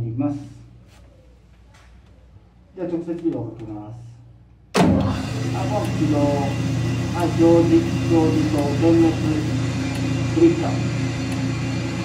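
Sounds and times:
electric pump motor humming: 4.8 - 12.0.

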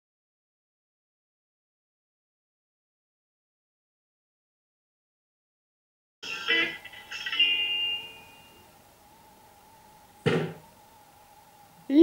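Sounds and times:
bell-like ringing tone: 6.2 - 9.9
short thump: 10.2 - 10.6.

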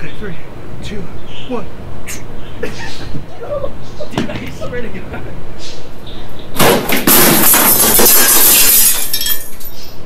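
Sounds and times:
glass smashing: 6.6 - 10.0.

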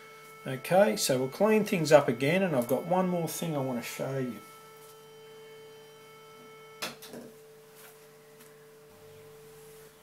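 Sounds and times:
sine test tone: 0.0 - 10.0.

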